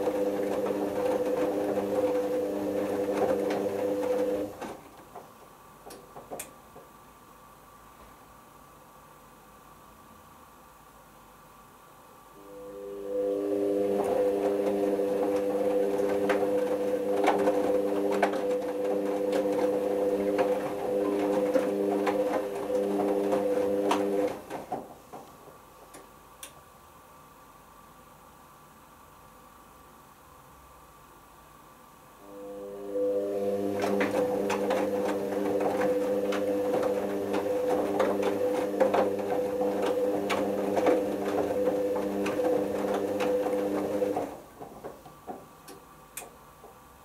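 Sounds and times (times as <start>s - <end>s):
washing machine motor whine: 0.0s - 4.9s, 12.4s - 24.9s, 32.2s - 47.0s.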